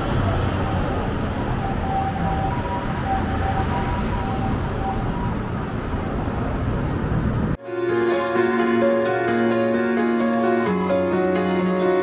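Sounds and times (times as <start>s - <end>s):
faint broken steady tones: 0.0s - 5.8s
passing cars and scooters: 0.0s - 7.6s.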